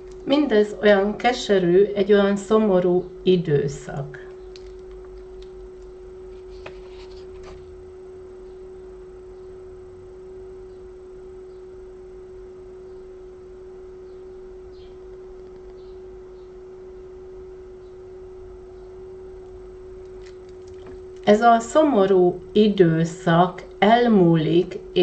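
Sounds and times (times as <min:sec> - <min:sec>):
low hum: 0:00.0 - 0:25.0
steady pure tone: 0:00.0 - 0:25.0.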